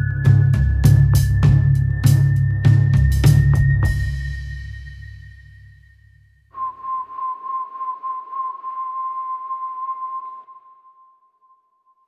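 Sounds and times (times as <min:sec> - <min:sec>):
low drum tail: 0:00.0 - 0:05.6
whistle-like tone: 0:00.0 - 0:12.0.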